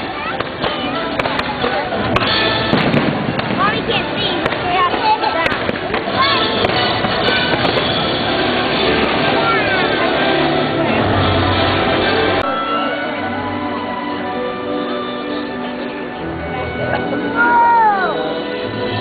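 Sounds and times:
fireworks bursting and crackling: 0.0s - 12.6s
crowd voices: 0.0s - 19.0s
loud show music: 0.0s - 19.0s.

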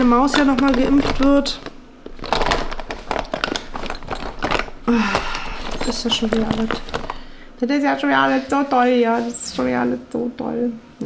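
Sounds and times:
small bottles clicking together: 0.0s - 7.2s
plastic pouch crinkling: 0.0s - 7.5s.

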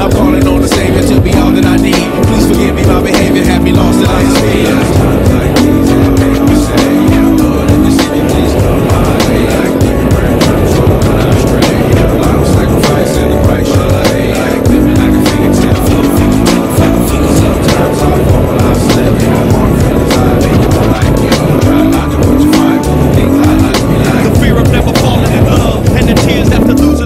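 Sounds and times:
dirt bike engine revving: 0.0s - 27.0s
music with steady beat: 0.0s - 27.0s.

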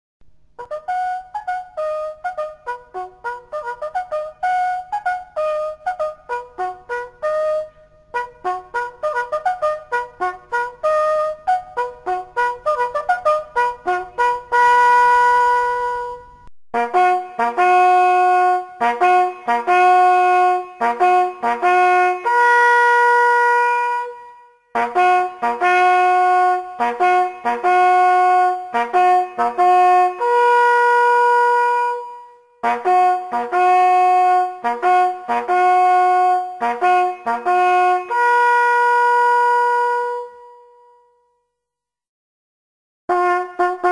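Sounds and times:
hunting horn fanfare: 0.6s - 41.0s, 43.1s - 43.9s.

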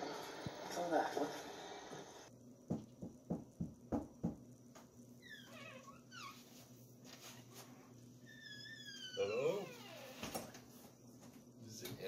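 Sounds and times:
door hinge squeaking: 5.2s - 6.4s, 8.3s - 10.5s.

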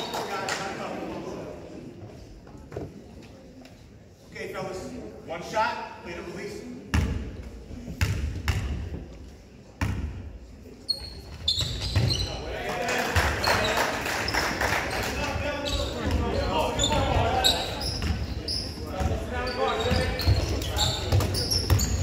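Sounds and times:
crowd voices: 0.0s - 22.0s
sneaker squeaks: 10.8s - 12.5s, 13.4s - 14.5s, 15.6s - 22.0s.

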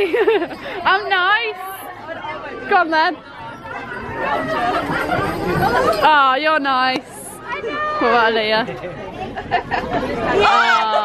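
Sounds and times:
people talking and laughing: 0.0s - 11.0s.

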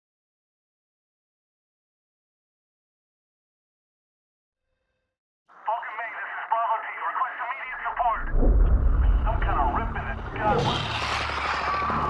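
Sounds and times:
voice over a radio: 5.6s - 8.4s, 9.2s - 10.7s
deep rumble: 8.0s - 11.5s.

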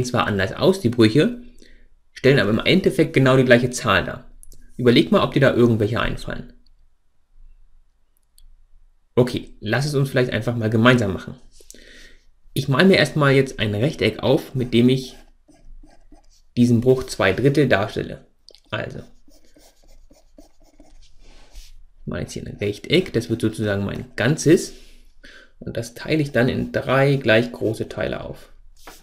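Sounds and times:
stylus scratching on tablet: 14.2s - 16.6s, 18.9s - 21.8s.

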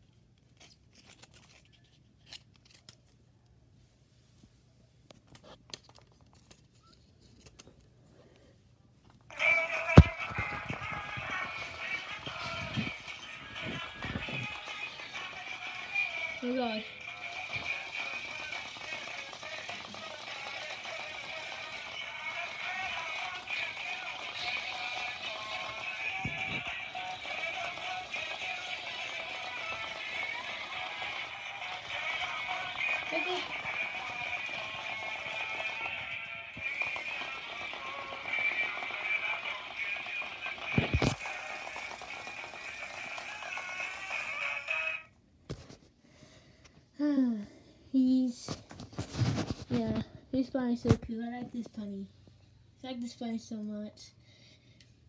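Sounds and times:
song from small toy speaker: 9.3s - 45.1s.

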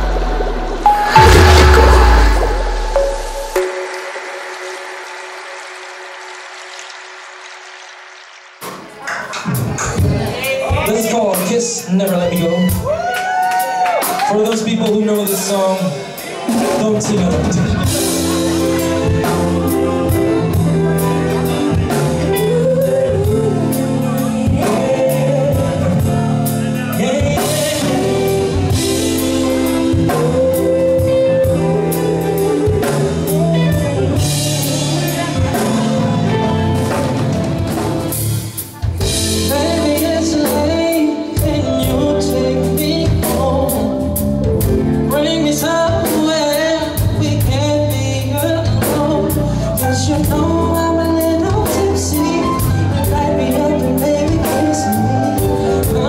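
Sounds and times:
electric bass: 0.0s - 3.6s, 17.6s - 56.0s
drum kit beat: 0.0s - 6.5s, 16.4s - 56.0s
electric guitar: 0.0s - 7.5s, 17.5s - 47.7s
man and woman singing: 22.2s - 26.2s, 30.0s - 36.3s, 39.4s - 44.0s, 45.1s - 56.0s.

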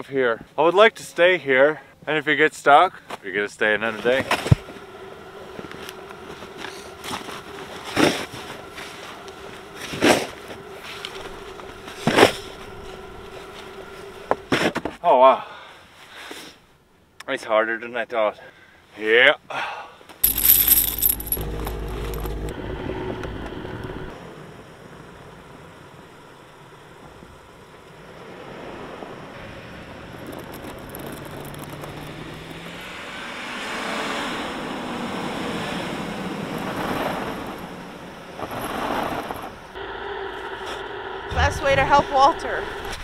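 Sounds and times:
wheels working in deep snow: 4.1s - 14.7s, 28.3s - 33.9s, 34.8s - 39.7s.

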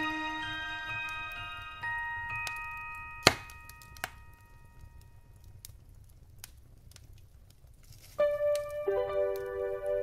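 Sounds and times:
music chime notes: 0.0s - 4.9s
wood fire crackling and popping: 0.0s - 10.0s
low rumble of flames: 0.5s - 10.0s.

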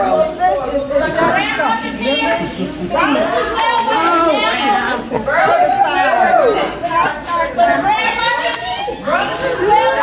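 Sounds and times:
loud indistinct chatter: 0.0s - 10.0s.

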